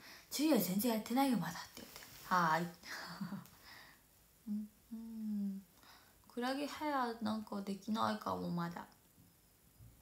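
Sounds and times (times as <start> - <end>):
woman humming: 4.4 - 5.7.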